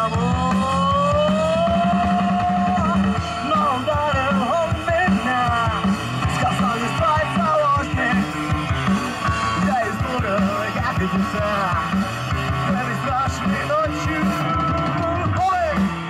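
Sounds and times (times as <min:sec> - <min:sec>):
bass guitar: 0:00.0 - 0:16.0
drums: 0:00.0 - 0:16.0
electric guitar: 0:00.0 - 0:16.0
lead guitar melody: 0:00.0 - 0:16.0.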